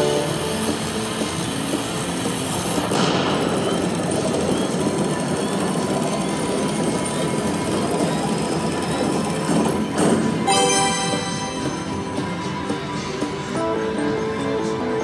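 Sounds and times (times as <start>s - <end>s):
slot machine rattling rumble: 0.0s - 12.4s.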